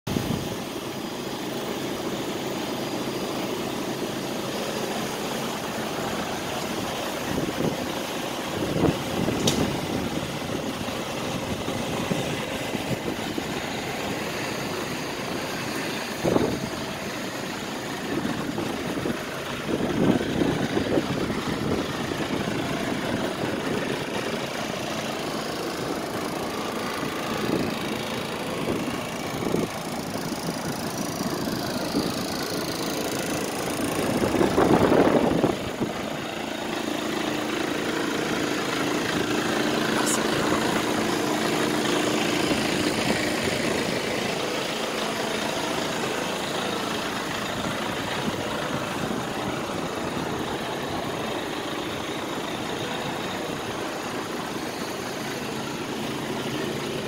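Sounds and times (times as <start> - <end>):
diesel engine idling: 0.0 - 57.0.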